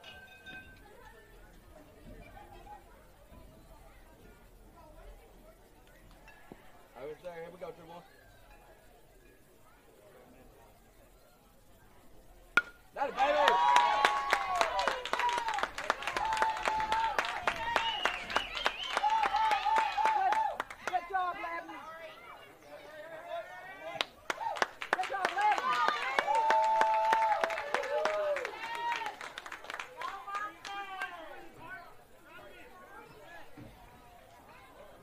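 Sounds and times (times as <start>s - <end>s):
bat hitting baseball: 12.6s - 12.9s
spectators cheering and yelling: 12.6s - 21.0s, 23.3s - 29.2s
clapping: 13.4s - 21.0s, 24.0s - 31.1s.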